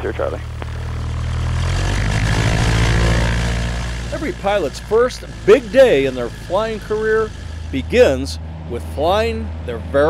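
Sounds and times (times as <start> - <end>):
propeller plane engine drone: 0.0 - 10.0.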